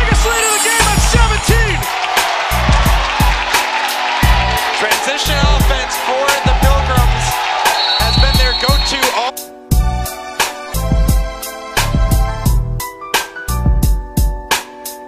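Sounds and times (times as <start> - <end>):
music with beat and deep bass: 0.0 - 15.0.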